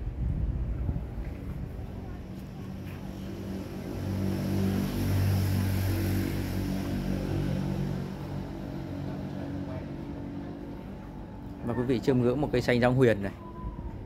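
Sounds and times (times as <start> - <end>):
motor vehicle passing: 1.6 - 14.0.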